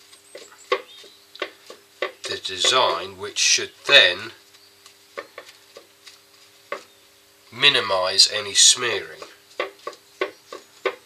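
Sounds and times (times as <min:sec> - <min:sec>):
pad dabbing on wooden bowl: 0:00.0 - 0:07.7, 0:08.6 - 0:11.0
faint steady hum: 0:00.0 - 0:11.0.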